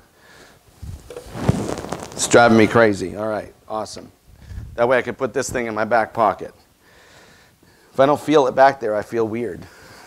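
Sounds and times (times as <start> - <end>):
cloth rustling against microphone: 0.6 - 3.1.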